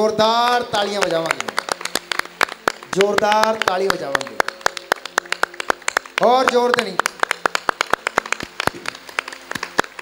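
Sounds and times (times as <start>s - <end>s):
congregation clapping: 0.5s - 10.0s.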